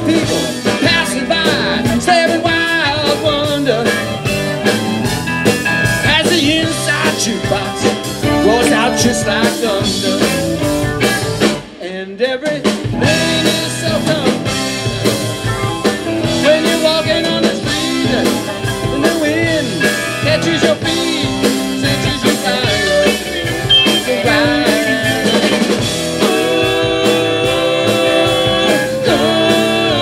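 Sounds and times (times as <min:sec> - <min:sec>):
guitar lead with bending notes: 0:00.0 - 0:11.7, 0:12.9 - 0:30.0
keyboards: 0:00.0 - 0:11.8, 0:12.5 - 0:30.0
electric guitars: 0:00.0 - 0:12.0, 0:12.6 - 0:30.0
bass guitar: 0:00.0 - 0:30.0
drums: 0:00.0 - 0:30.0.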